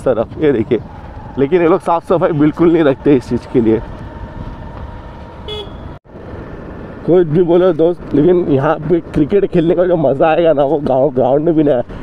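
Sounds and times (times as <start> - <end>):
motorcycle engine rumble: 0.0 - 12.0
wind: 0.0 - 12.0
motorcycle horn toot: 5.4 - 6.0.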